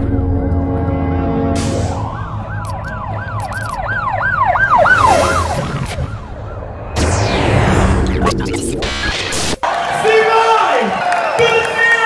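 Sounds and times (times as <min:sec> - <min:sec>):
low bass drone: 0:00.0 - 0:09.6
sweeping synth tone: 0:00.0 - 0:09.6
glitchy clicks: 0:02.6 - 0:04.0, 0:07.0 - 0:09.6.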